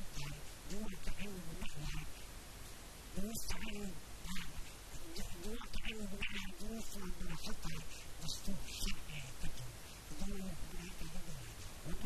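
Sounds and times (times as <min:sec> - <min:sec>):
man speaking into microphone: 0:00.0 - 0:02.2, 0:03.2 - 0:12.0.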